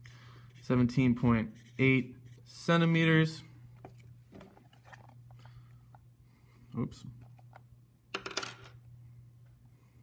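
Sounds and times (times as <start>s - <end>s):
pencil clattering on a desk: 8.2s - 8.8s.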